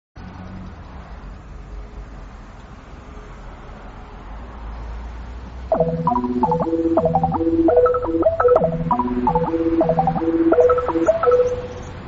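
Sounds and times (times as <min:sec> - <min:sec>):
music with plucked notes: 0:05.7 - 0:11.8.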